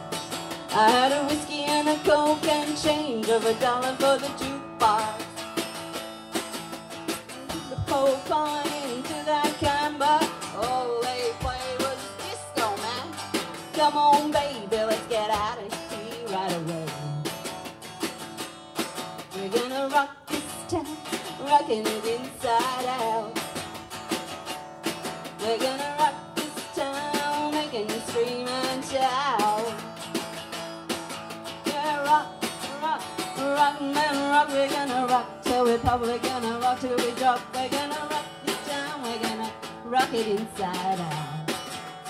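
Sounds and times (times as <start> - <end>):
acoustic guitar strummed: 0.0 - 42.0.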